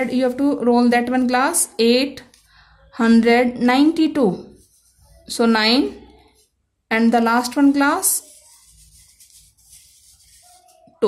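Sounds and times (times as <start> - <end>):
paper cups rubbing: 4.5 - 5.4, 7.4 - 11.0.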